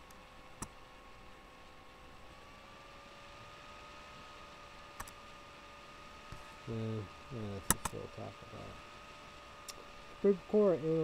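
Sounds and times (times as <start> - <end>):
faint steady hum: 0.0 - 11.0
sharp click: 5.0 - 5.2, 7.6 - 8.0.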